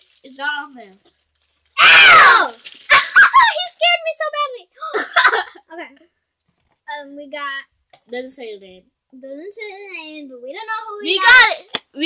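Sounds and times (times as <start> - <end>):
child squealing: 1.8 - 3.6.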